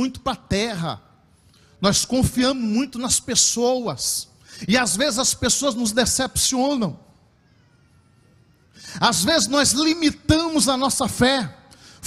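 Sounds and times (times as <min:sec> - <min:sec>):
person preaching: 0:00.0 - 0:01.1, 0:01.8 - 0:07.2, 0:08.7 - 0:12.0.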